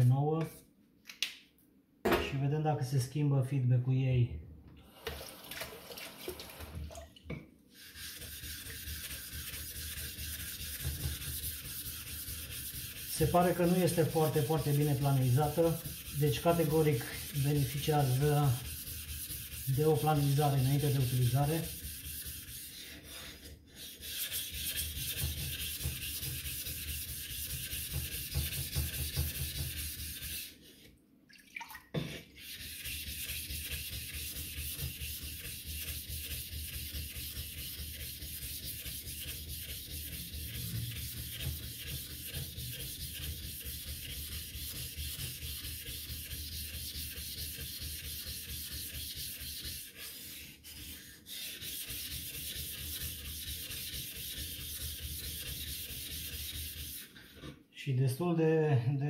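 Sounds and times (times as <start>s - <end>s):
plate scrubbing on wet whetstone: 7.8s - 30.9s, 32.0s - 57.2s.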